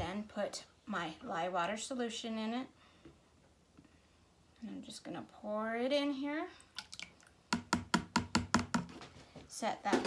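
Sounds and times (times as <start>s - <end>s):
plastic jug tapping plastic bowl: 7.5s - 9.0s.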